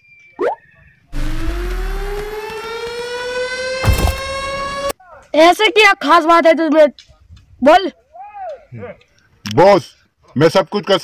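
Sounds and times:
siren-like rising tone: 0:01.2 - 0:04.9.

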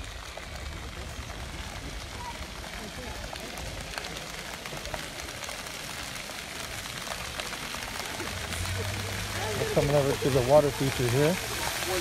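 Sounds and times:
fountain jets splashing on paving: 0:00.0 - 0:12.0.

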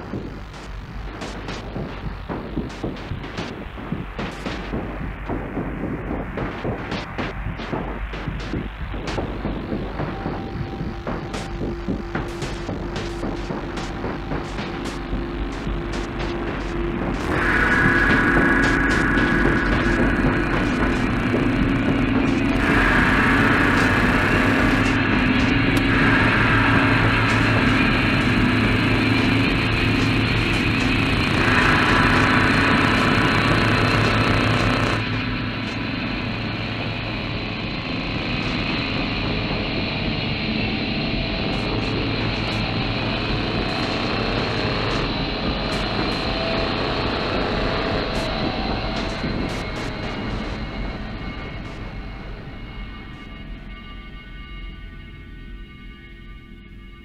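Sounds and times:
vehicle engine drone: 0:00.0 - 0:55.4
sustained tones: 0:00.0 - 0:57.0.

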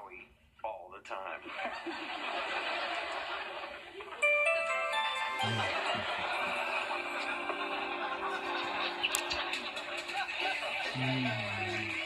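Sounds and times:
studio audience laughter: 0:01.4 - 0:04.2, 0:05.6 - 0:12.0.

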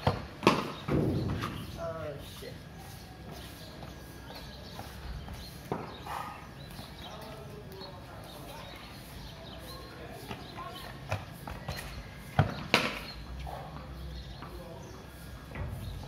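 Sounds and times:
faint distant voices: 0:00.0 - 0:16.0.

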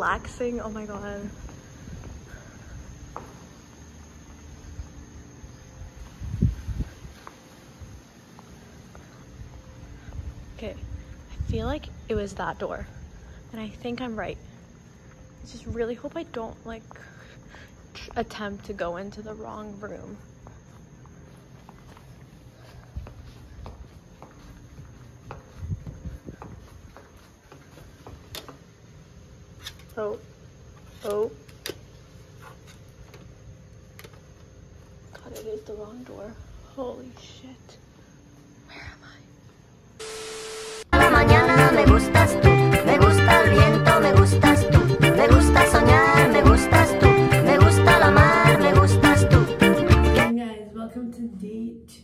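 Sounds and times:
footsteps on tiled floor: 0:00.0 - 0:11.4, 0:14.5 - 0:37.5
high insect trill: 0:00.0 - 0:50.2.

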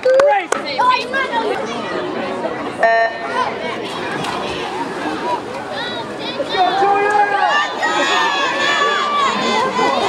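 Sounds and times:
spectators chattering: 0:00.0 - 0:10.0.

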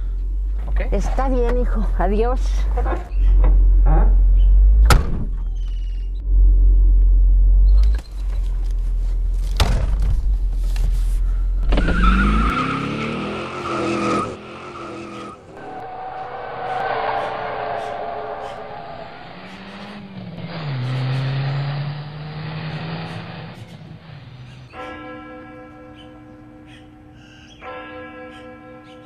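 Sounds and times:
car engine rumble: 0:00.0 - 0:24.8
engine revving: 0:11.6 - 0:24.6.

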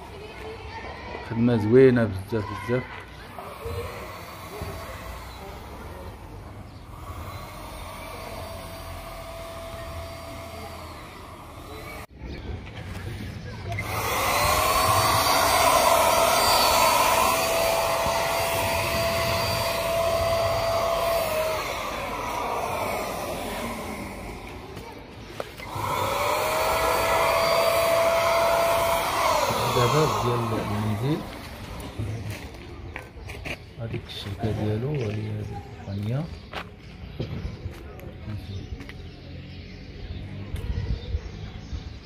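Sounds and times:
electric paint spray gun whining: 0:02.6 - 0:32.7
hiss of paint spray: 0:03.4 - 0:12.1, 0:13.8 - 0:24.8.

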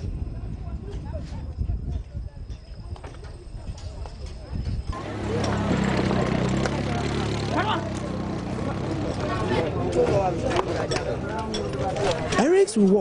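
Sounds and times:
people's voices: 0:00.0 - 0:13.0.

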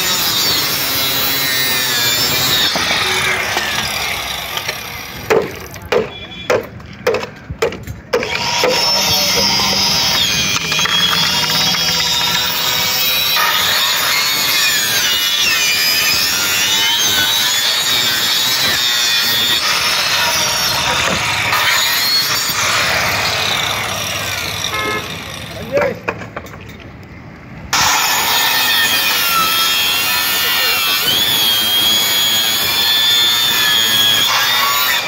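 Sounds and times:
electric saw cutting bamboo: 0:00.0 - 0:05.7, 0:08.1 - 0:25.6, 0:27.7 - 0:35.0.

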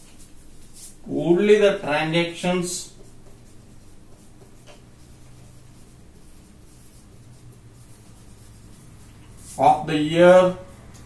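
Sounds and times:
low steady hum: 0:00.0 - 0:11.0
marker scratching on whiteboard: 0:00.0 - 0:11.0.

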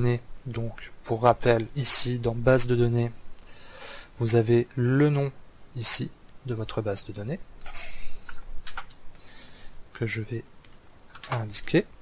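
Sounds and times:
computer keyboard keys clicking: 0:07.6 - 0:09.0, 0:10.6 - 0:11.5.

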